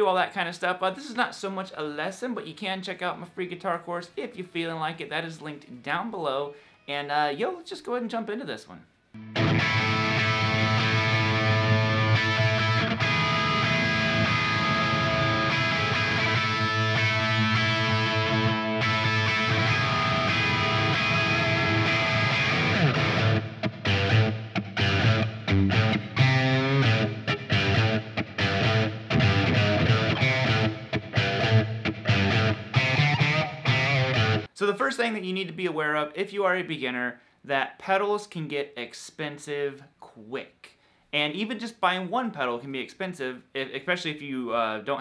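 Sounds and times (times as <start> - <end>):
distorted electric guitar riff: 9.2 - 34.5.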